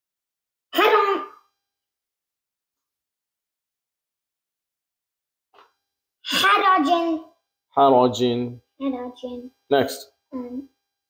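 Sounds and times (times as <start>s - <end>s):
person clearing throat: 0.8s - 1.4s.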